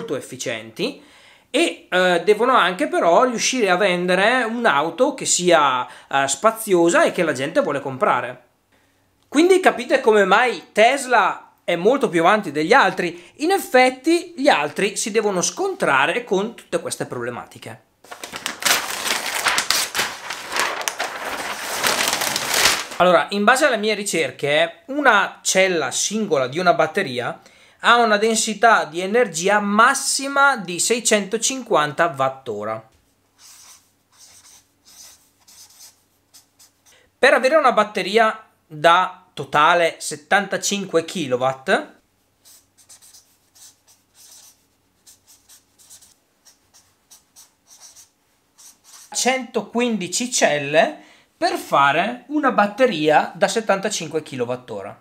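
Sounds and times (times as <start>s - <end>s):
paper sheet rustling and crackling: 18.0s - 23.1s
marker pen writing on paper: 33.4s - 37.0s, 42.4s - 49.1s.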